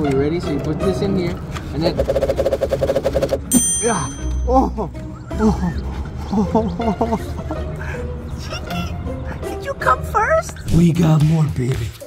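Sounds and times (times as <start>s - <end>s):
rapid rattling drumroll: 1.9s - 3.4s
bright high chime: 3.5s - 4.7s.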